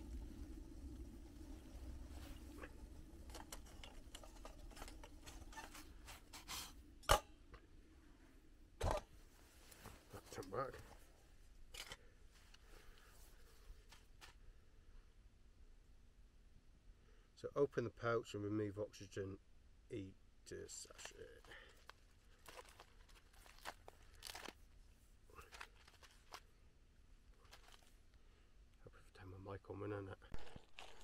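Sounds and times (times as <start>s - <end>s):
water boiling in pan: 0.0s - 7.0s.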